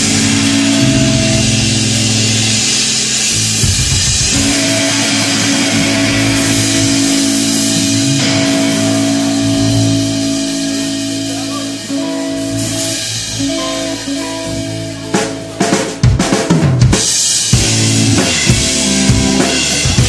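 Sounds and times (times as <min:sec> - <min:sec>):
electric guitar sustained notes: 0:00.0 - 0:16.1
bass guitar: 0:00.0 - 0:20.0
drum kit cymbals: 0:00.0 - 0:20.0.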